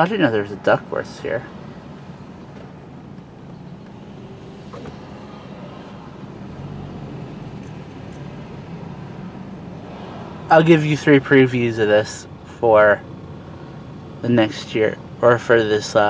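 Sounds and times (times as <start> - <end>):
car cabin hum: 0.0 - 16.0.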